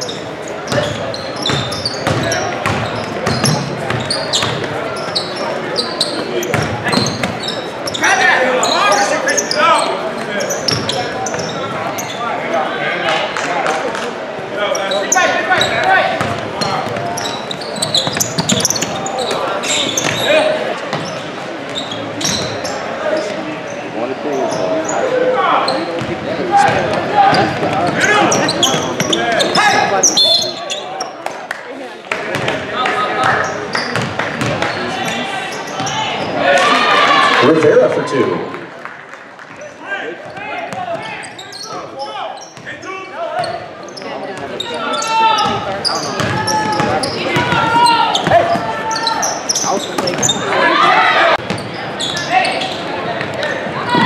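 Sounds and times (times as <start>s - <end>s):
voices calling out: 0.0s - 31.3s, 39.6s - 54.0s
basketball bouncing on hardwood: 1.5s - 4.7s.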